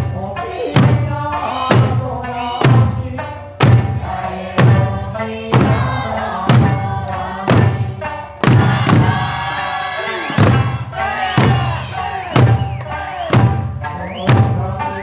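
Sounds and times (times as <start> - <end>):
barrel drums and frame drums struck: 0.0 - 15.0
folk song singing: 0.0 - 15.0.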